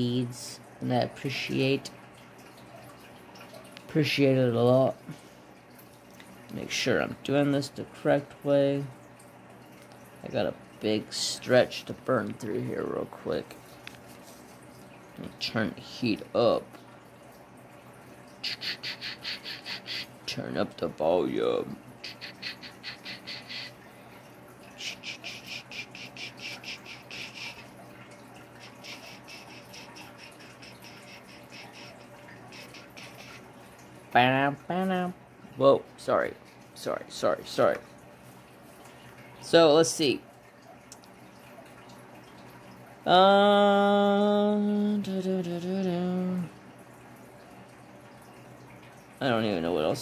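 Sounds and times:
faint electrical hum: 0.0 - 50.0.

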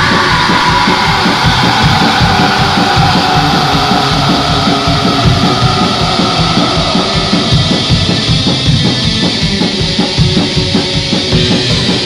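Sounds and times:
distorted electric guitar: 0.0 - 12.0
fast driving drums: 0.0 - 12.0.

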